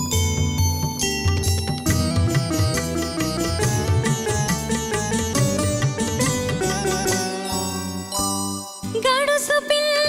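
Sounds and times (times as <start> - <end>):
tabla beat: 0.0 - 8.4
plucked sitar-toned melody: 0.0 - 10.0.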